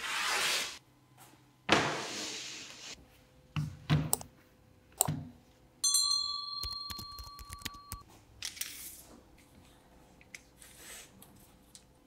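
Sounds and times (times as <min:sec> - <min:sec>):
bright bell-like ding: 0:05.8 - 0:08.0.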